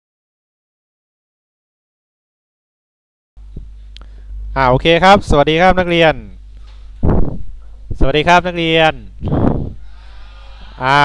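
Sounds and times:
steady low hum: 0:03.4 - 0:11.0
man speaking into headset microphone: 0:04.6 - 0:06.4, 0:08.0 - 0:09.2, 0:10.8 - 0:11.0
breathy sound: 0:09.3 - 0:11.0.

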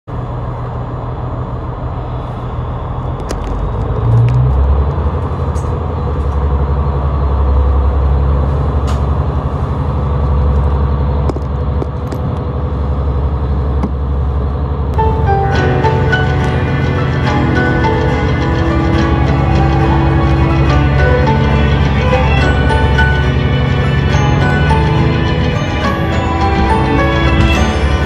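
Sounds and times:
train engine drone: 0:00.1 - 0:28.0.

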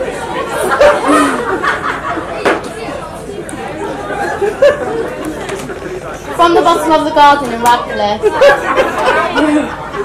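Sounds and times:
party guests chattering: 0:00.0 - 0:10.0.

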